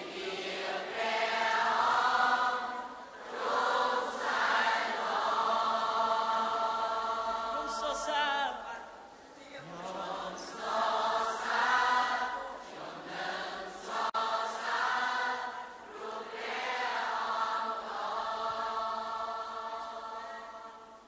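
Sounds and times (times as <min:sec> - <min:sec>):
voices singing worship song: 0:00.0 - 0:21.0.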